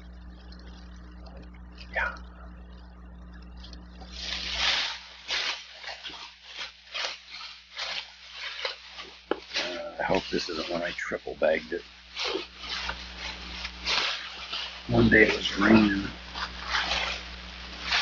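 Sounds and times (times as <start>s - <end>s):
plastic bag rustling: 4.0s - 18.0s.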